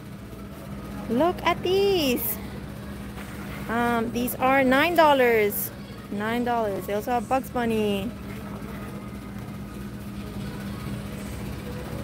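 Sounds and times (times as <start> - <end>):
low hum of shop background: 0.0 - 12.0.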